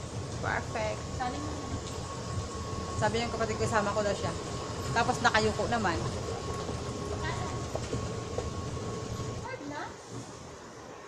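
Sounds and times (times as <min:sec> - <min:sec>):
train rumble and whine: 0:00.0 - 0:11.0.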